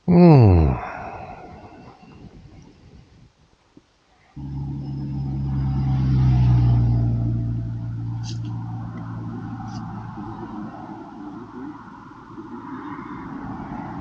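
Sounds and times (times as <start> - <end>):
vehicle engine passing by: 4.4 - 14.0.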